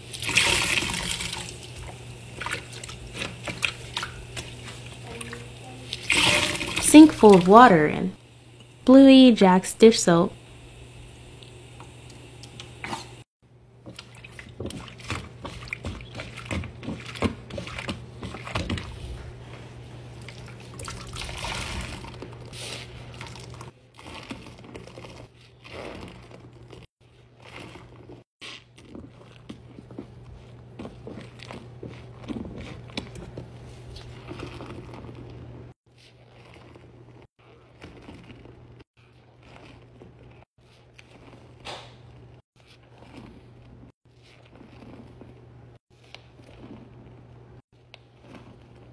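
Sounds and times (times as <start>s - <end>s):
sponge squelching in water: 0.0s - 8.1s, 13.8s - 48.9s.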